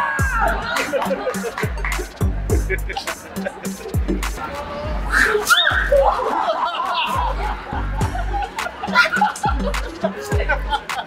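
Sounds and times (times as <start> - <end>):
background music with bass beat: 0.0 - 11.0
person chuckling: 0.4 - 4.0, 6.0 - 11.0.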